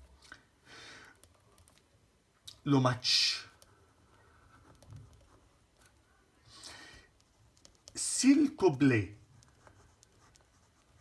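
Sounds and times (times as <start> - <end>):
pen scratching on paper: 9.3 - 11.0.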